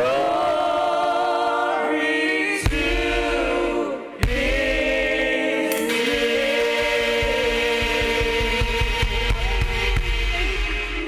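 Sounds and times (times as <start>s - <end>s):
women singing: 0.0s - 11.0s
steady low beat: 2.7s - 11.0s.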